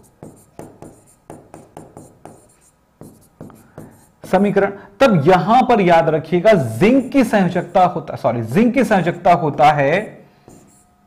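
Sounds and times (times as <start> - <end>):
pen scratching on board: 0.0 - 4.6, 10.5 - 10.9.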